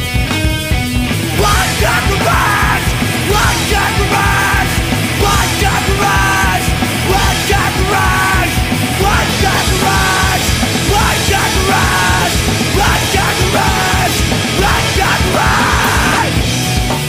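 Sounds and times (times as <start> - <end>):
punk rock band playing: 0.0 - 17.0
person yelling vocals: 1.4 - 16.4.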